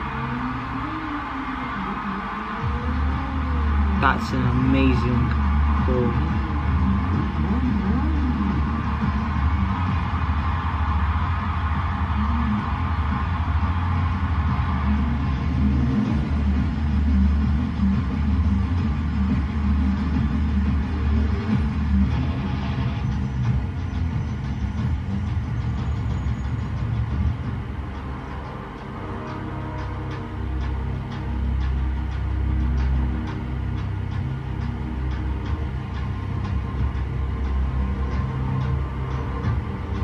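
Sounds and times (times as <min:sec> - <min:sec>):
dramatic music: 0:00.0 - 0:40.0.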